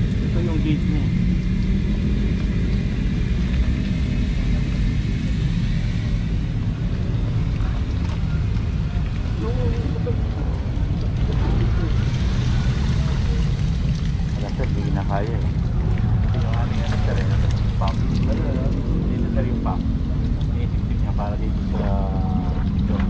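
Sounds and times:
steady low rumble: 0.0s - 23.0s.

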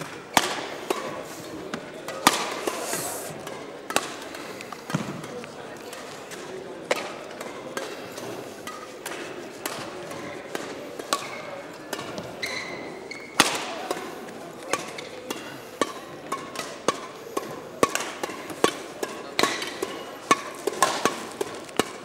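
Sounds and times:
rackets hitting shuttlecocks: 0.0s - 22.0s.

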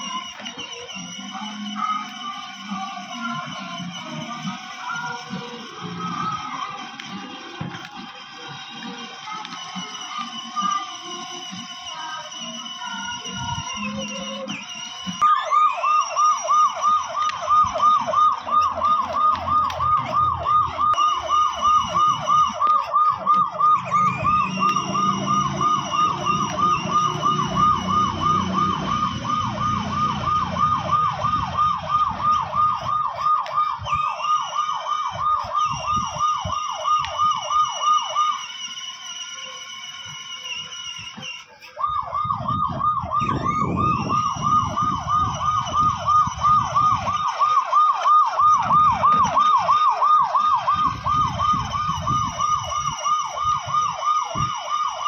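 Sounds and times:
plastic wheels rolling on concrete: 0.0s - 55.0s
toy electronic siren warbling: 0.0s - 55.0s.

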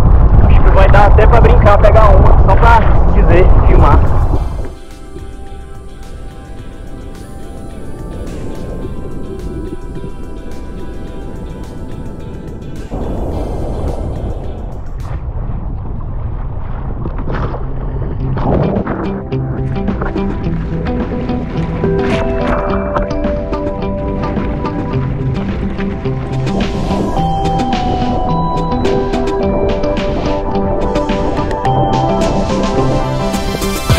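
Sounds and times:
background music: 3.2s - 15.3s, 18.2s - 33.9s.

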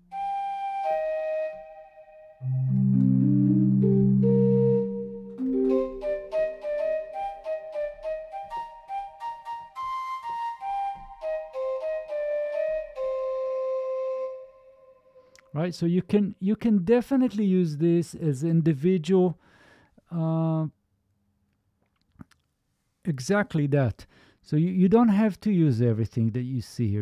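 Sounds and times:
synthesized flute notes: 0.0s - 15.3s.

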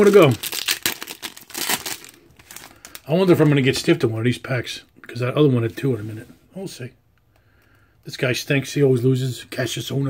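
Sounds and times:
wrapper crinkling and tearing: 0.0s - 4.0s.

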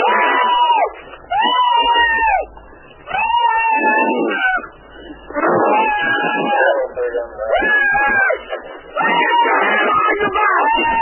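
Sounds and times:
person screaming: 9.0s - 11.0s.

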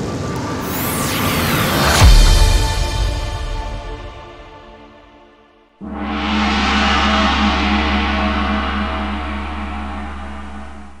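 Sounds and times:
low drone with ringing tone: 5.8s - 11.0s.

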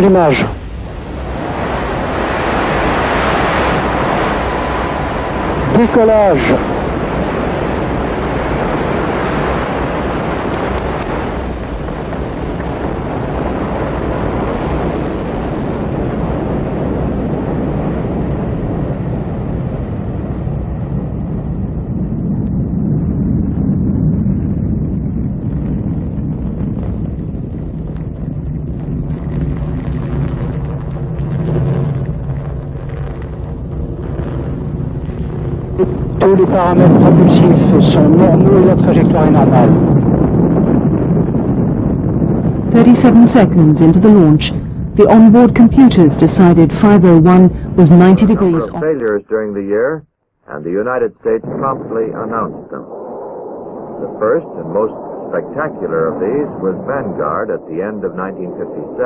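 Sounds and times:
rocket engines roaring: 0.0s - 59.0s.

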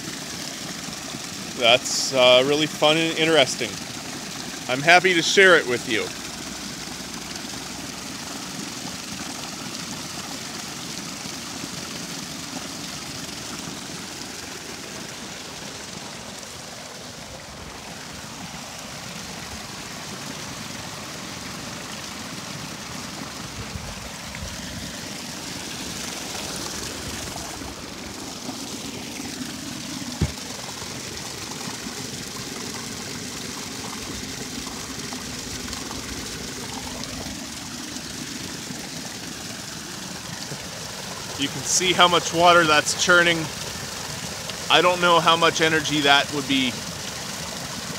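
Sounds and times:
water pouring onto waterwheel: 0.0s - 47.9s.

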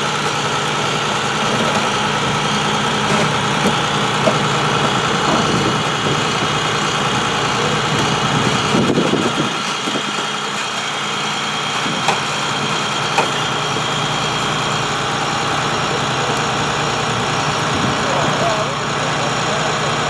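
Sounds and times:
tow truck engine running: 0.0s - 20.0s.

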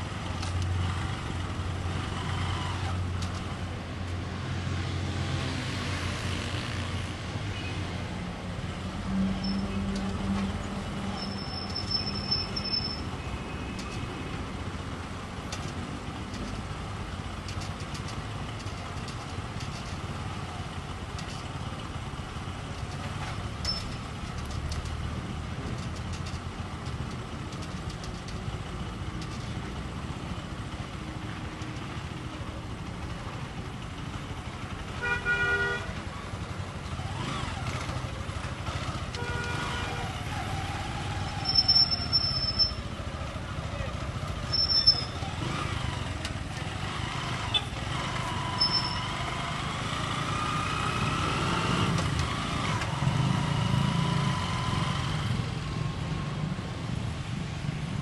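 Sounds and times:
traffic rumble: 0.0s - 58.0s
car horn: 35.0s - 36.0s, 39.2s - 40.2s
engine revving: 36.9s - 41.3s, 45.3s - 56.3s
high-pitched squeals: 41.3s - 42.9s.

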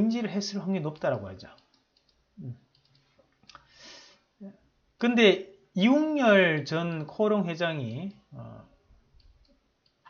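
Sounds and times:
soft hiss: 0.0s - 10.0s
computer mouse clicks: 0.9s - 3.6s, 9.2s - 10.0s.

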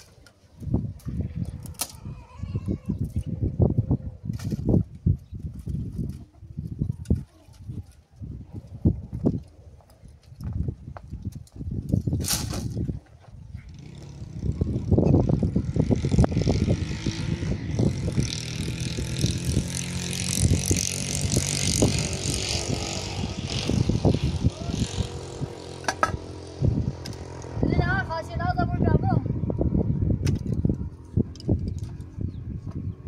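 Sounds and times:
knocks and rustles: 9.2s - 13.4s.

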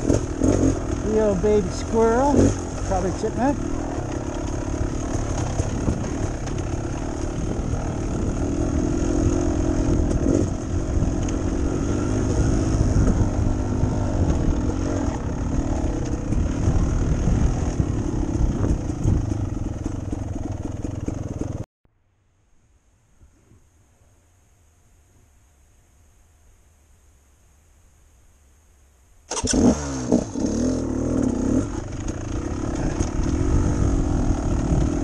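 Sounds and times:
dirt bike engine running: 0.0s - 21.6s, 29.3s - 35.0s.

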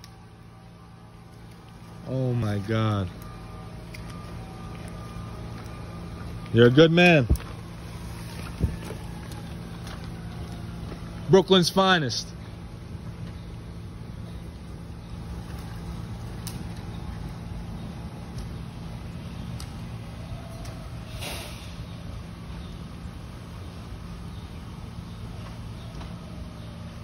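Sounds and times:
subway train idling hum: 0.0s - 27.0s.

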